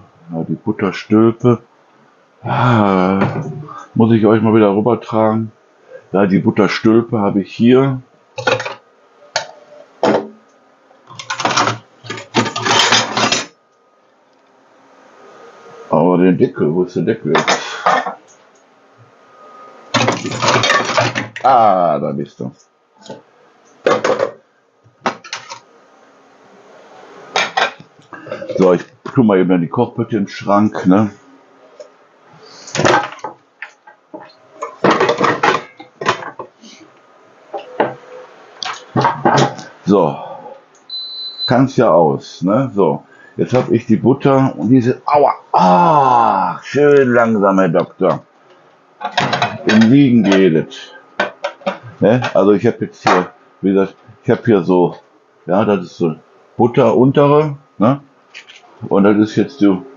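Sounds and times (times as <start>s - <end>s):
kitchenware clattering and rattling: 11.1s - 13.5s, 20.0s - 21.3s, 34.6s - 36.5s, 49.0s - 49.9s.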